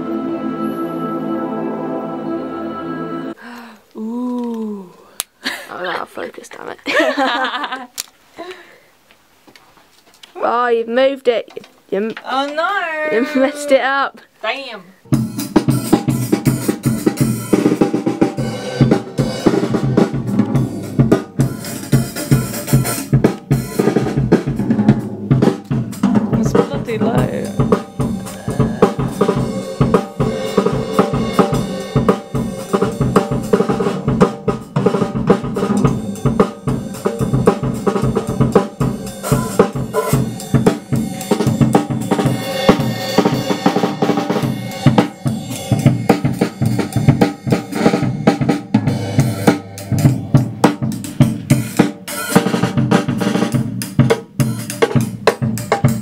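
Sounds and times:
acoustic drum kit playing: 15.1 - 56.0.

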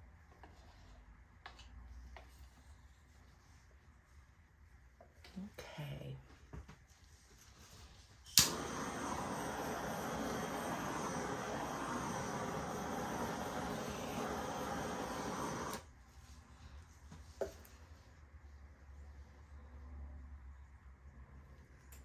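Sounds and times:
gas torch hissing: 8.3 - 15.9.

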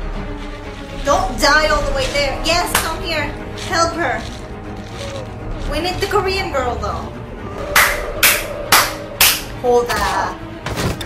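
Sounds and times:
background music with held tone: 0.0 - 11.0
sharp hits: 7.5 - 9.9.

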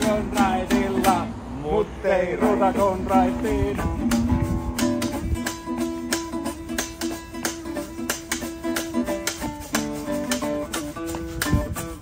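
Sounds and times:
acoustic guitar strumming: 0.0 - 1.4, 2.1 - 12.0.

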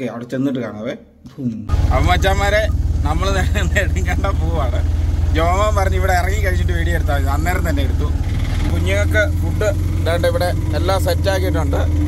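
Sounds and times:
voices: 1.5 - 12.0
rickshaw engine rumble: 1.7 - 12.0.

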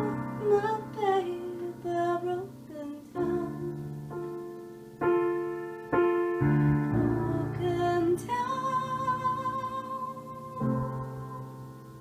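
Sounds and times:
woman singing a long note: 0.0 - 3.9, 7.1 - 12.0
digital piano ballad chords: 0.0 - 12.0.

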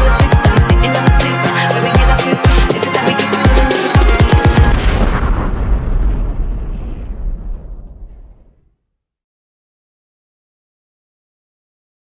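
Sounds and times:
electronic music: 0.0 - 4.8
long rumbling tail: 3.9 - 8.7
heavy boom with bass sweeps: 4.0 - 8.7.

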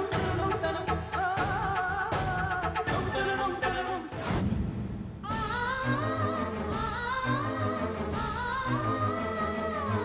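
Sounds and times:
person singing with vibrato: 0.0 - 4.2, 5.2 - 10.0.

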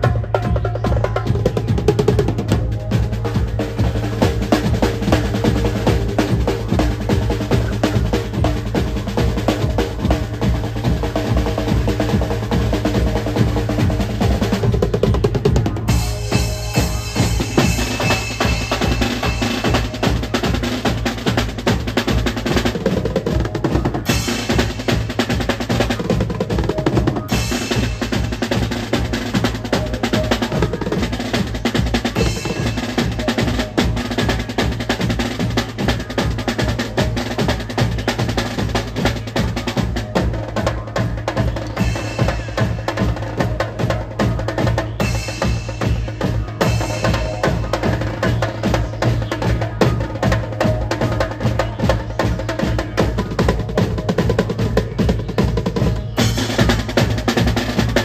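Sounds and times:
bass drum: 0.0 - 58.0
cymbals: 0.0 - 58.0
fast snare and tom drumming: 0.0 - 58.0.

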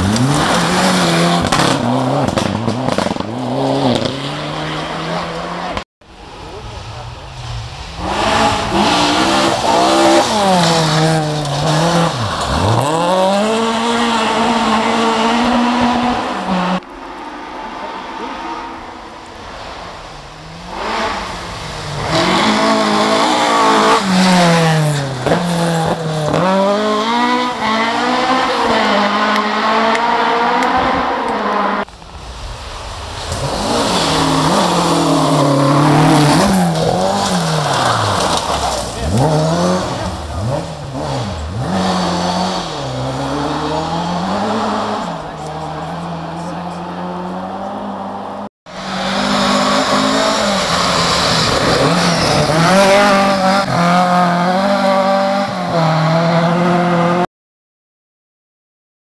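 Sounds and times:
rally car engines revving: 0.0 - 57.3.

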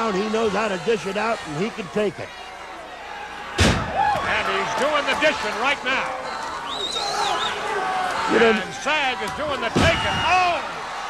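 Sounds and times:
body hitting wrestling ring: 9.6 - 10.6.

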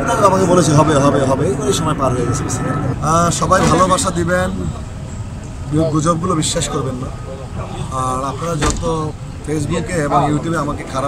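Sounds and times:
man talking: 0.0 - 4.9, 5.6 - 11.0
sharp knock: 3.6 - 4.0.

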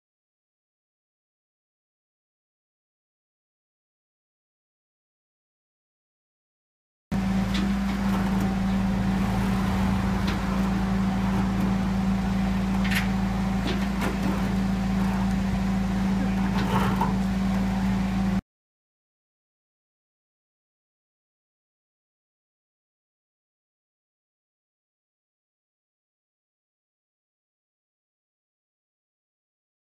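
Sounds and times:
diesel truck engine running: 7.2 - 18.4.

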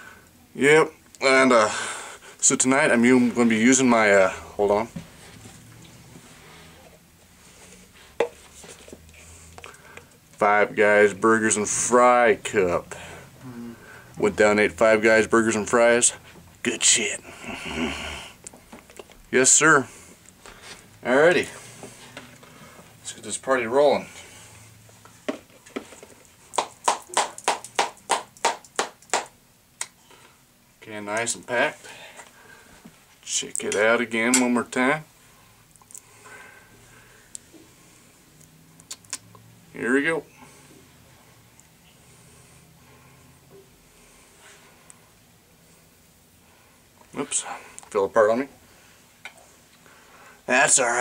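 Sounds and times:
plastic cup handling rustle: 5.0 - 10.1, 25.0 - 26.8.

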